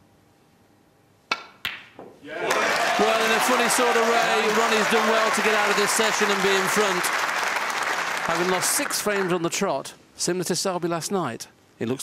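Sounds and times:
audience applause: 2.3 - 9.4.

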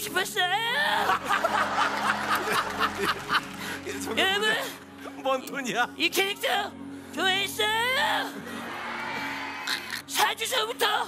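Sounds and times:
studio audience laughing: 0.9 - 4.1.

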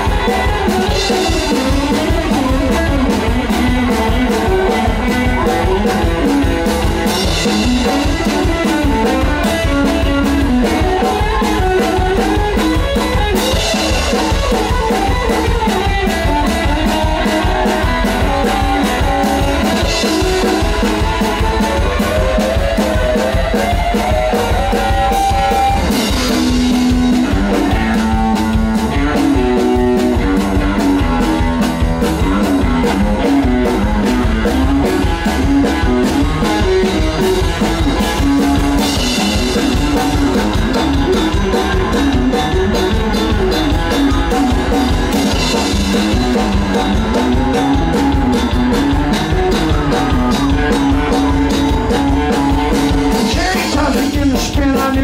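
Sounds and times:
rockabilly band playing: 0.0 - 55.0.

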